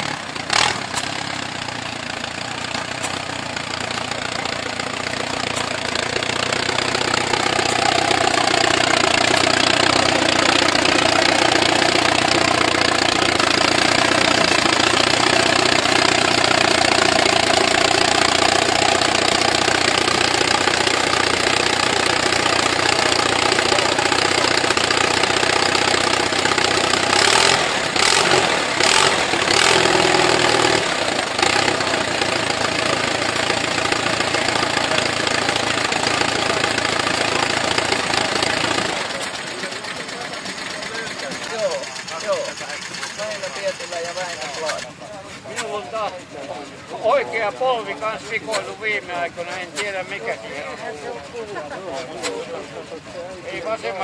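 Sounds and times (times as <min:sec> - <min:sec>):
tractor engine running: 0:00.0 - 0:54.0.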